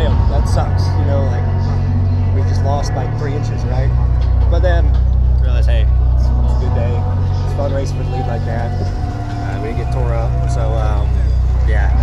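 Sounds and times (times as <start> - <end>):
low rumble: 0.0 - 12.0
voices talking: 0.0 - 12.0.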